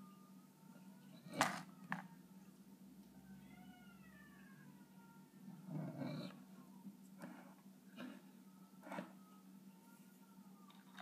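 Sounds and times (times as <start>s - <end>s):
steady low hum: 0.0s - 11.0s
cat meowing: 3.4s - 4.7s.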